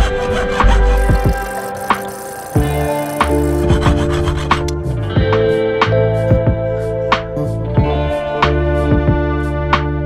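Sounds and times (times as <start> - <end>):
hand saw rasping: 0.0 - 4.9
background music with steady beat: 0.1 - 10.0.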